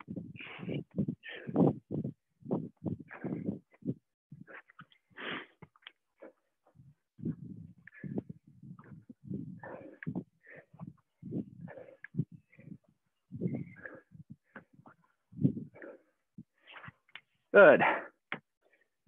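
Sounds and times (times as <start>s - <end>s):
heavy breathing and grunting: 0.3s - 1.9s, 2.7s - 3.8s, 7.3s - 16.2s, 17.7s - 18.2s.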